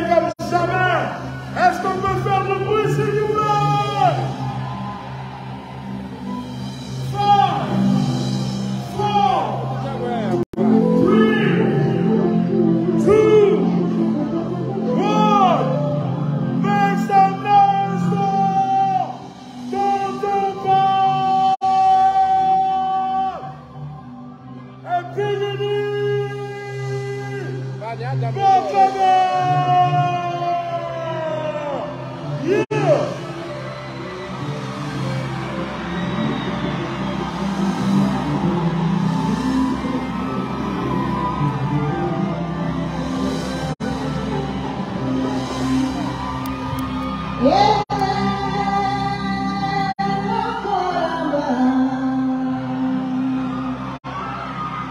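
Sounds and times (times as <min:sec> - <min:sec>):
keyboard: 0:00.0 - 0:54.9.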